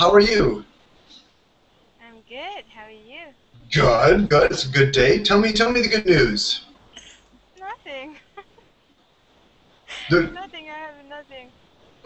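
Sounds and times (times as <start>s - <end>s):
faint line noise: 0.0s - 12.0s
person speaking: 2.1s - 8.6s, 9.9s - 11.5s
stifled laugh: 8.1s - 8.8s, 9.9s - 10.4s.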